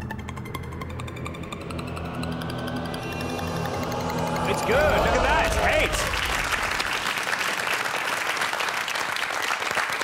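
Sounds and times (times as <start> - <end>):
rapid electronic ticking: 0.0 - 5.9
rising tone: 0.0 - 7.2
low musical drone: 0.0 - 7.4.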